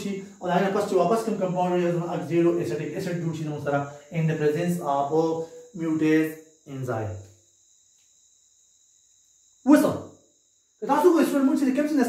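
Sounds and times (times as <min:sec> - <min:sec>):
man speaking: 0:00.0 - 0:07.2, 0:09.7 - 0:10.0, 0:10.8 - 0:12.0.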